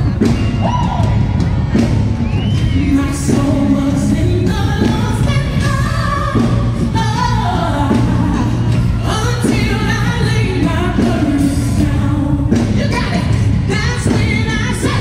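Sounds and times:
backing singers: 0.0 - 15.0
gospel band playing: 0.0 - 15.0
female lead vocal: 2.6 - 15.0.

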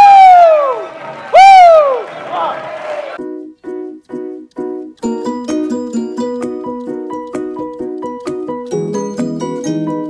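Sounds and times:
person yelling whoo: 0.0 - 2.1
crowd cheering: 0.0 - 3.2.

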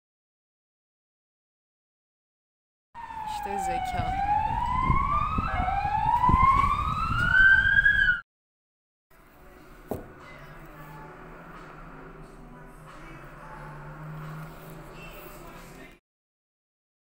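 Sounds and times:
low street noise: 3.0 - 8.2, 9.1 - 16.0
siren wailing: 3.0 - 8.2.

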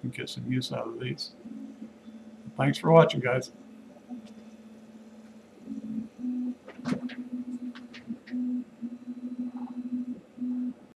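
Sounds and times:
low steady hum: 0.0 - 10.9.

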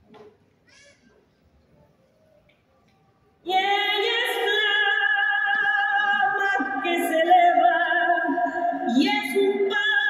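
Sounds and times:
faint audience sounds: 0.0 - 10.0.

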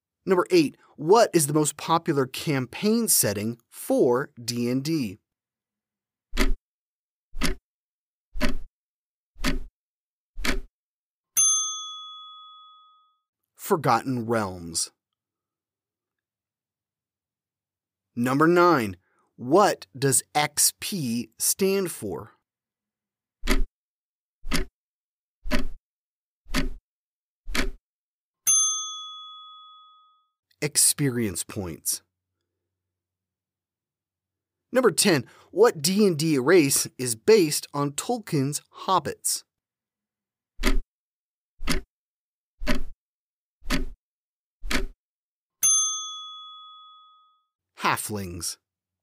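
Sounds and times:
clock ticks: 6.4 - 6.6, 7.4 - 7.6, 8.4 - 8.7, 9.4 - 9.7, 10.4 - 10.7, 23.4 - 23.7, 24.5 - 24.7, 25.5 - 25.8, 26.5 - 26.8, 27.5 - 27.8, 40.6 - 40.8, 41.6 - 41.9, 42.6 - 43.0, 43.7 - 44.0, 44.7 - 45.0
bell ding: 11.4 - 13.2, 28.5 - 30.3, 45.6 - 47.5.

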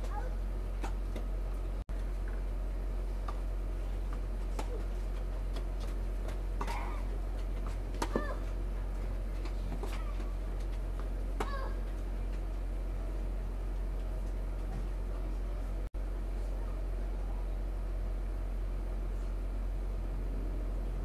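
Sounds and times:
low steady hum: 0.0 - 21.0
racket striking tennis ball: 8.0 - 8.4.

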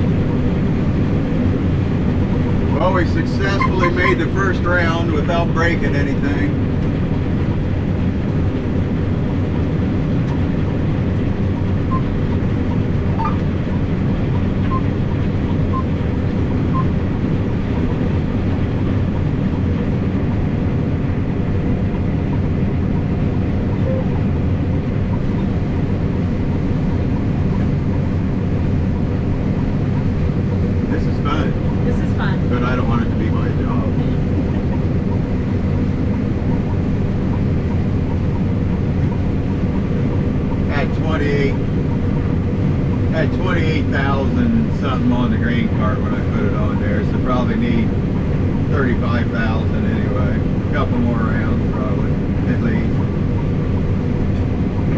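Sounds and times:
combine harvester drone: 0.0 - 54.9
low voices: 2.7 - 6.6, 30.9 - 34.8, 43.1 - 47.9, 48.7 - 52.9.

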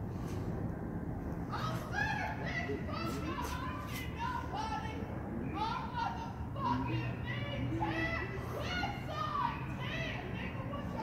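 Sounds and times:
high-pitched voices chattering: 1.5 - 11.0.

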